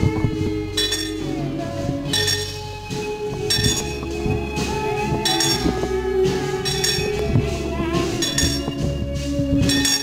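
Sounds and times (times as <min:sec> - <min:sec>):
music with long held tones: 0:00.0 - 0:10.0
small metal bells ringing: 0:00.7 - 0:01.2, 0:02.1 - 0:02.6, 0:03.5 - 0:04.0, 0:05.3 - 0:05.7, 0:06.6 - 0:07.2, 0:08.2 - 0:08.8, 0:09.7 - 0:10.0.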